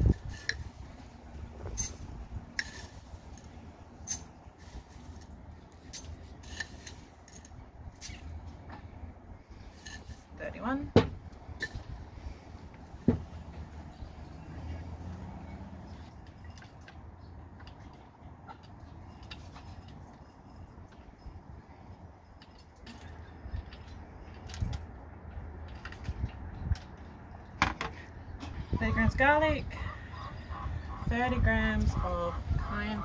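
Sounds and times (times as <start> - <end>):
low steady rumble: 0.0 - 33.0.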